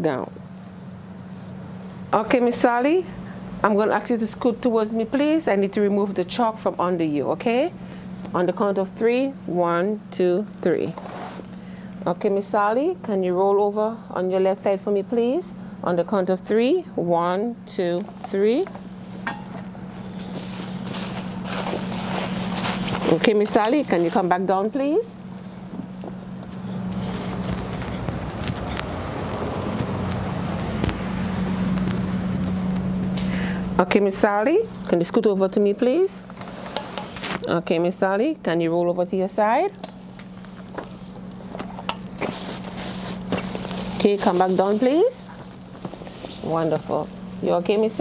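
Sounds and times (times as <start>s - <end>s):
steady hum: 0.0s - 48.0s
bed linen rustling: 19.8s - 24.3s, 26.2s - 32.8s, 42.2s - 48.0s.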